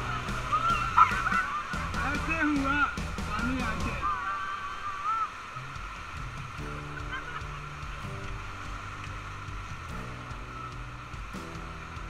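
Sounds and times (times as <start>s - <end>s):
people yelping and whooping: 0.0s - 5.6s
white-water rapids rushing: 0.0s - 12.0s.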